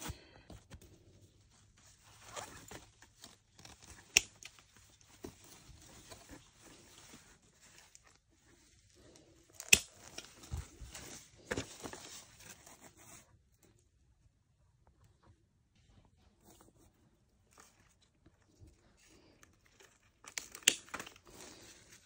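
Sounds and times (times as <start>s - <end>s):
garden scissors snipping stems: 9.6s - 10.2s, 20.3s - 21.0s.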